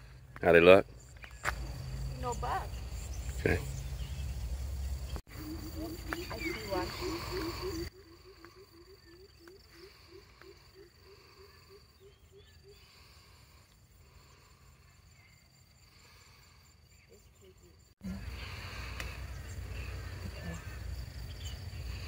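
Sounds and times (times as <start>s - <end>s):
high-pitched insect drone: 4.2s - 22.0s.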